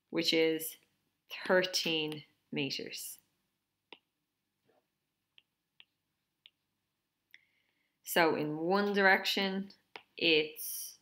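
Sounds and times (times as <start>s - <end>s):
stylus on tablet screen: 0.0s - 11.0s.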